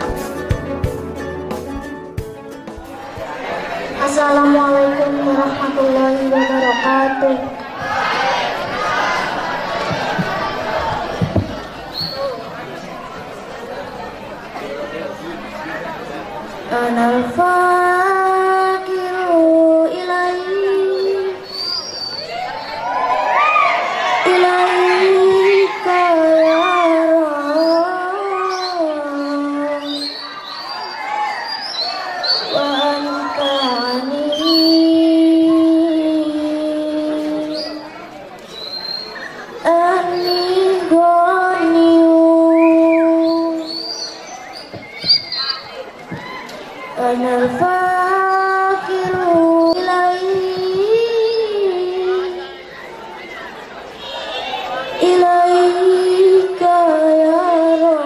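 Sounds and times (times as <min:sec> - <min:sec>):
girl singing devotional song: 0:04.0 - 0:07.4, 0:16.7 - 0:21.4, 0:24.2 - 0:30.0, 0:32.5 - 0:37.9, 0:39.6 - 0:43.7, 0:47.0 - 0:52.5, 0:55.0 - 0:58.0.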